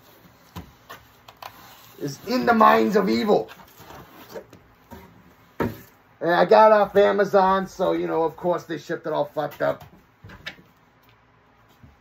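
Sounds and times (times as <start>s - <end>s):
cardboard and record sleeve rubbing: 0.0s - 5.5s.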